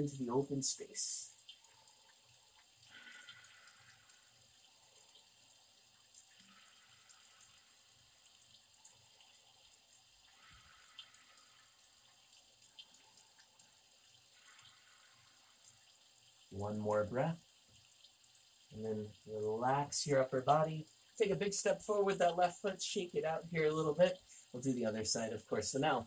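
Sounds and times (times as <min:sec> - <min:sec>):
faint room hiss: 0:00.0 - 0:26.0
soft breaths: 0:00.8 - 0:19.6, 0:24.0 - 0:24.6.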